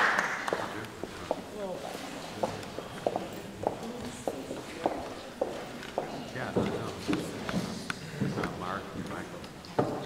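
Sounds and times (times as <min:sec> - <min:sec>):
footsteps knocking: 0:02.4 - 0:10.0.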